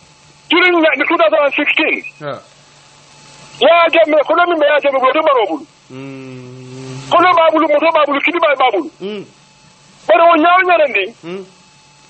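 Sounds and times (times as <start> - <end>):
speech over telephone line: 0.5 - 2.3, 3.6 - 5.7, 7.1 - 9.0, 10.1 - 11.2.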